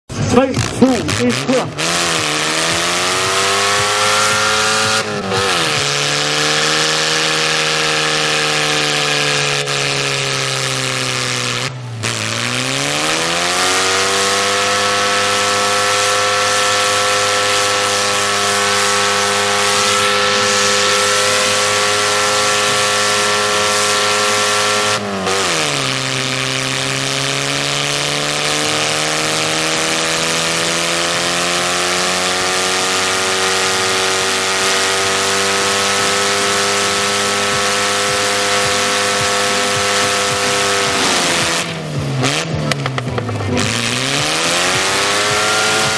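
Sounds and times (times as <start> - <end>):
car engine revving high: 0.1 - 45.9.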